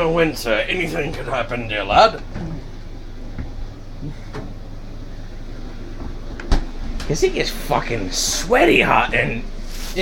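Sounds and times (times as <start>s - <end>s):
low indoor hum: 0.0s - 10.0s.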